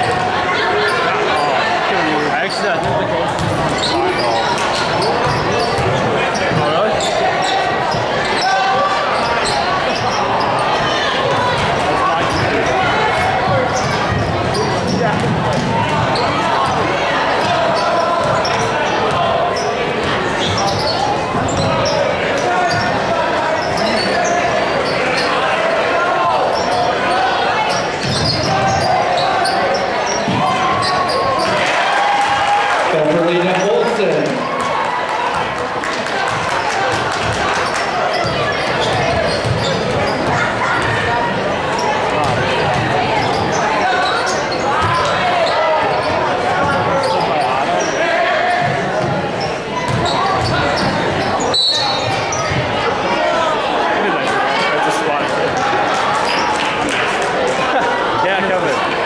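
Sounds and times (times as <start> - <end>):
spectators chattering: 0.0 - 59.0
basketball bouncing on wooden court: 2.8 - 4.2, 13.8 - 16.8, 38.2 - 41.0, 42.2 - 43.5, 49.9 - 51.0.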